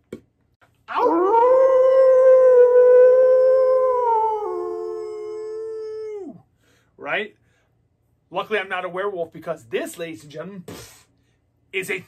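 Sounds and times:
man imitating wolf howl: 0:00.9 - 0:06.4.

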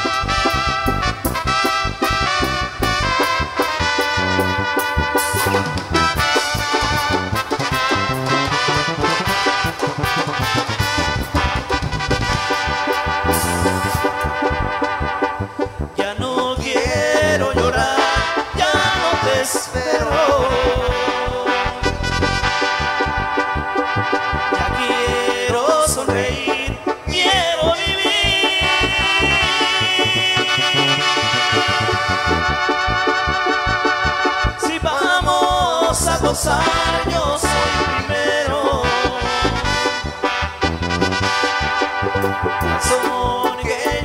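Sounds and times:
brass-like keyboard melody: 0:00.0 - 0:44.0
electric bass: 0:00.0 - 0:44.0
drum kit steady beat: 0:04.8 - 0:14.3.

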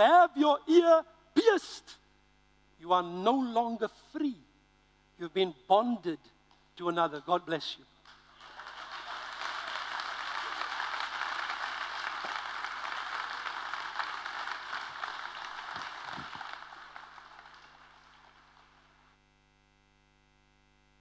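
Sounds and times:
audience applauding: 0:08.0 - 0:19.1.

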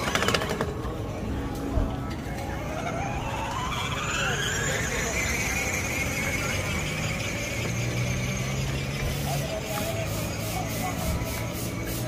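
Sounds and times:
plastic wheels rumbling on bricks: 0:00.0 - 0:01.2
electric motor whining: 0:02.0 - 0:10.3.

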